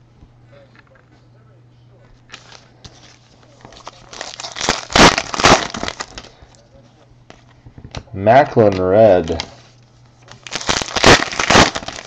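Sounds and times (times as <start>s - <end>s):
foil wrapper crinkling: 2.3s - 6.4s, 10.3s - 12.0s.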